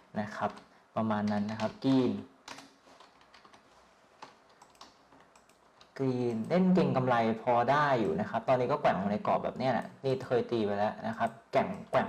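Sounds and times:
keystrokes on computer keyboard: 0.5 - 3.6, 4.2 - 6.6.

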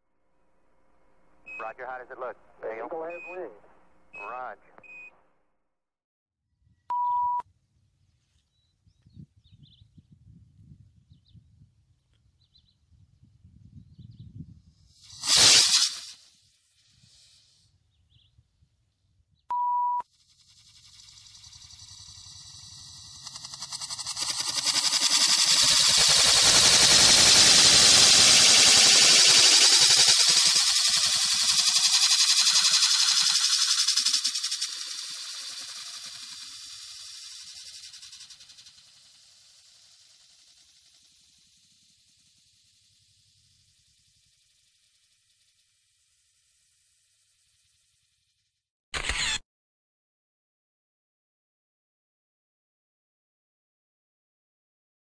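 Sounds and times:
short beep: 1.5 - 1.8, 3.1 - 3.6, 4.2 - 5.1, 6.9 - 7.4, 19.5 - 20.0
rocket propellant hissing rush: 14.9 - 17.6, 20.6 - 43.0.

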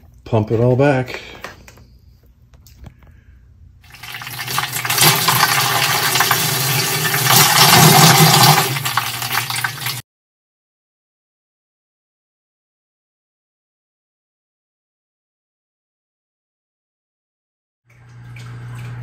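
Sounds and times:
pump hum: 3.1 - 10.0, 17.9 - 19.0
water pouring into plastic container: 3.8 - 10.0.

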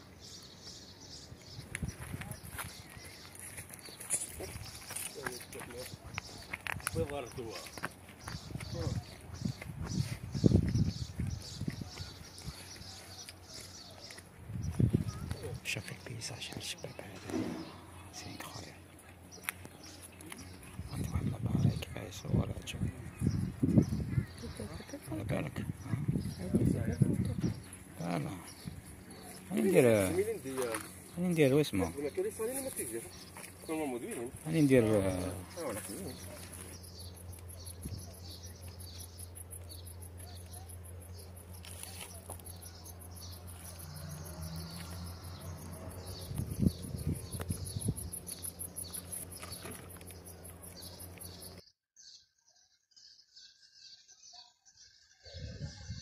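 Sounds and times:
crickets chirping: 23.6 - 51.6.

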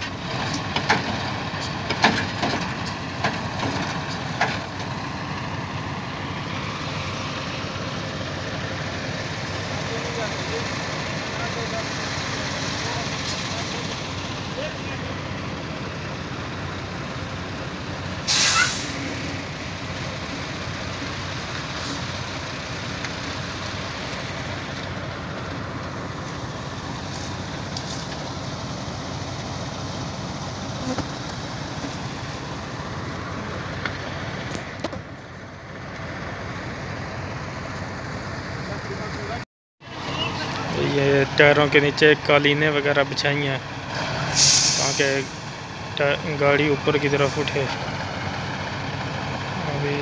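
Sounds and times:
diesel engine running: 0.0 - 50.0
loud hiss: 18.2 - 19.3, 44.3 - 45.6.

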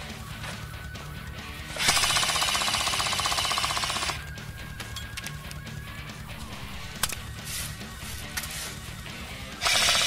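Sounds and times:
background music: 0.0 - 10.0
machine gun burst rattle: 1.8 - 4.2, 9.6 - 10.0.

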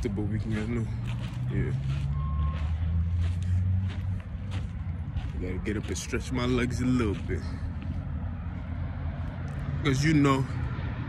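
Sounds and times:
large vehicle engine humming: 0.0 - 11.0.

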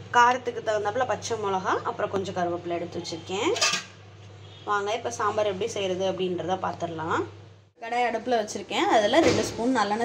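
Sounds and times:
metal bowl clattering: 3.4 - 4.0.

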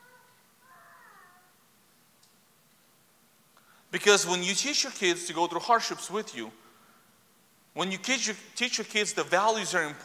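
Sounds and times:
faint high-pitched cry: 0.0 - 1.6.

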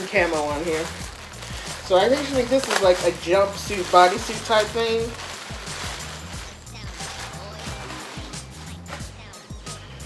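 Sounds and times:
plastic bag crinkling: 0.0 - 9.4
background music with beat: 0.0 - 10.0.

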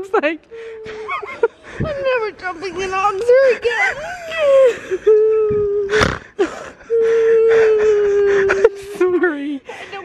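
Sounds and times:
girl crying wails: 3.3 - 6.0, 6.8 - 9.1.

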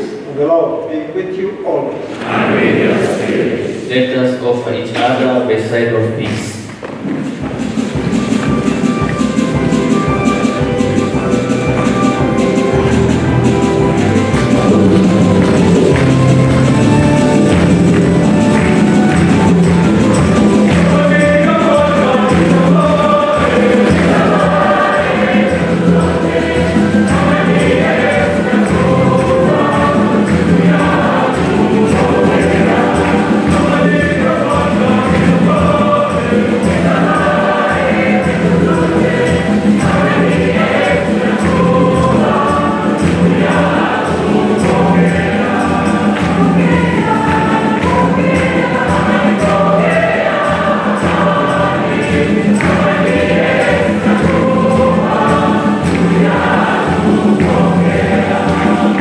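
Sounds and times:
choir singing a hymn: 1.9 - 6.2, 7.8 - 59.0
steady beat: 6.8 - 59.0.

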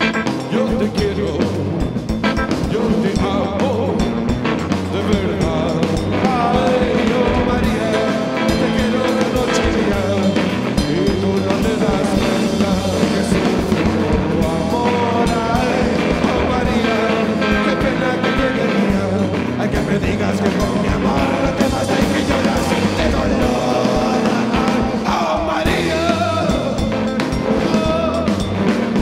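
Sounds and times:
distorted electric guitar: 0.0 - 29.0
drums: 0.0 - 29.0
man singing: 0.0 - 29.0.

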